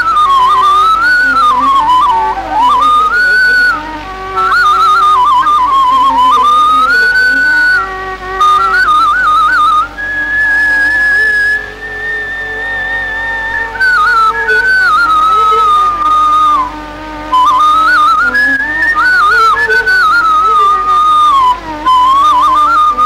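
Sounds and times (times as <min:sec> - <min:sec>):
bamboo flute melody: 0:00.0 - 0:23.0
lower accompanying line: 0:00.0 - 0:23.0.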